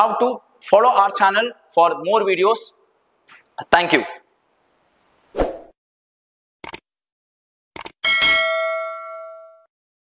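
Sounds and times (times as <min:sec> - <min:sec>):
bell ding: 0:08.0 - 0:09.7.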